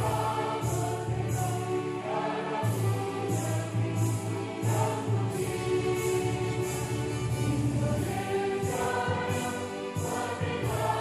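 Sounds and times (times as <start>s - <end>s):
choir singing held notes: 0.0s - 11.0s
instrumental accompaniment: 0.0s - 11.0s.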